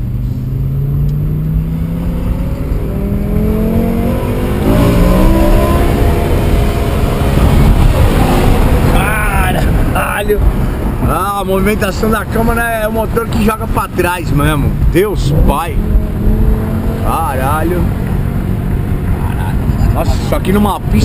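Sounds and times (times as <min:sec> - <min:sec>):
car engine accelerating hard: 0:00.0 - 0:11.4, 0:13.9 - 0:21.0.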